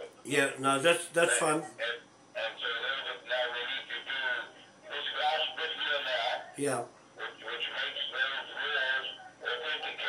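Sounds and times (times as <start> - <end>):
voice over phone loudspeaker: 0.8 - 10.0.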